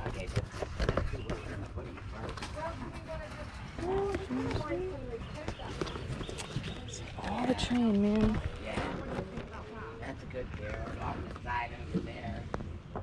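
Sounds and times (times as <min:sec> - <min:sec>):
indistinct voices talking: 0:00.9 - 0:12.4.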